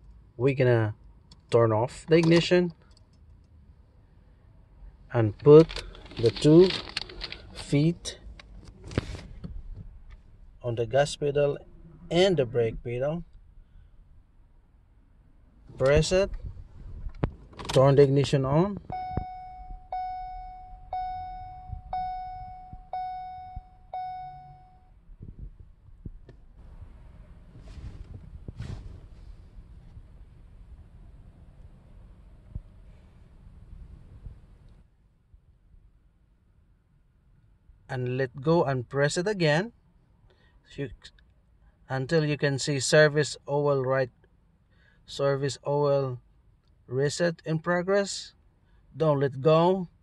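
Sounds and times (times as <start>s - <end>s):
faint low hum: 0.0s - 47.5s
dashboard warning chime: 18.9s - 25.0s
faint rustling: 25.3s - 30.8s.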